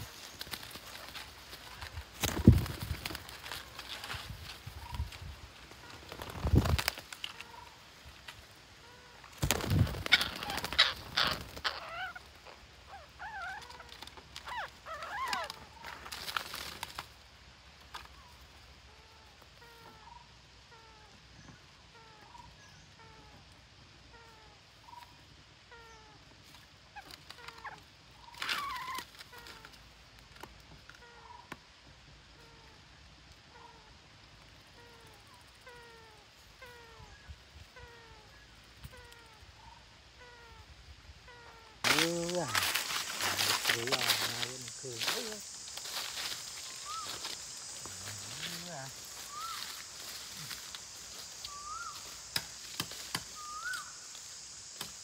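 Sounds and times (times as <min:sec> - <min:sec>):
wing flutter: 0:00.0 - 0:20.2, 0:25.7 - 0:31.5, 0:34.3 - 0:55.0
parakeets squawking: 0:09.4 - 0:15.7, 0:41.9 - 0:50.6.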